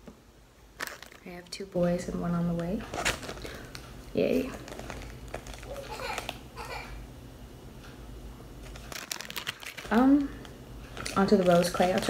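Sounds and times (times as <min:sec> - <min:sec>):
plastic bag crinkling: 0:00.8 - 0:01.5, 0:02.8 - 0:06.8, 0:08.6 - 0:12.0.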